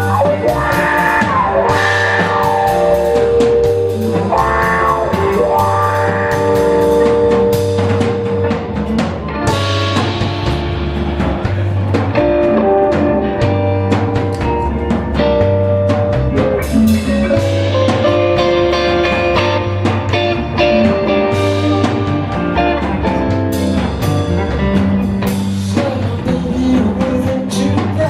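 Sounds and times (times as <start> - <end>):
blues-rock band playing: 0.0 - 28.0
electric guitar lead: 0.0 - 28.0.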